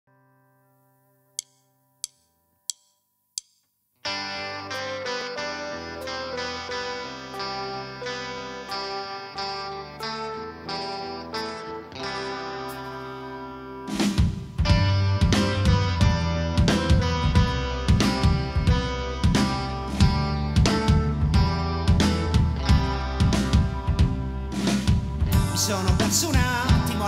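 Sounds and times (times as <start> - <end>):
sharp count-in clicks: 1.4 - 3.7
electric guitar picked notes: 4.0 - 14.0, 14.6 - 27.0.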